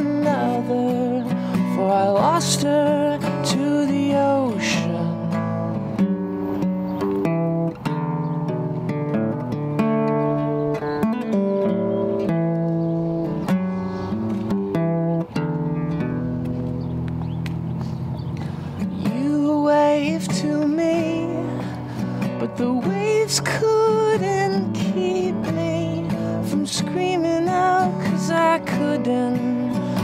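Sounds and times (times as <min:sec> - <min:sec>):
man singing: 0:00.0 - 0:05.5, 0:19.0 - 0:21.8, 0:22.4 - 0:30.0
acoustic guitar strummed and picked: 0:00.0 - 0:30.0.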